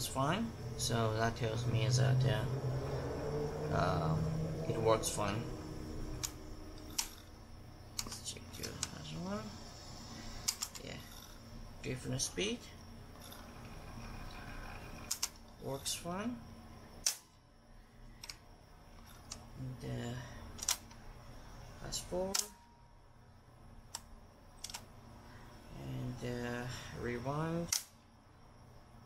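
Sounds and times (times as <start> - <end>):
tape recorder motor hum: 0.0 - 11.9, 12.6 - 15.8
mechanical clicks: 6.2 - 7.3, 7.9 - 9.0, 10.4 - 11.3, 13.2 - 15.6, 20.6 - 21.0, 22.3 - 22.6, 23.9 - 24.9, 27.7 - 28.0
sharp switch click: 22.3 - 22.6.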